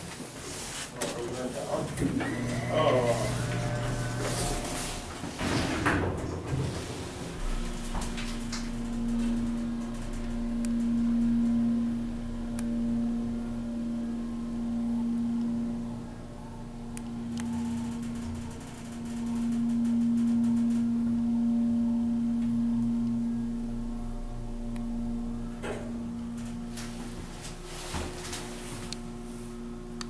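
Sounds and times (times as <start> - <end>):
elevator hydraulic pump humming: 1.6 - 30.0.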